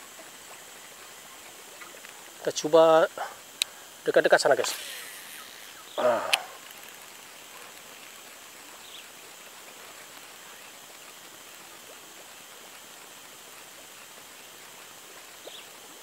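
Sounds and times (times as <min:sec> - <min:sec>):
outdoor hiss: 0:00.0 - 0:16.0.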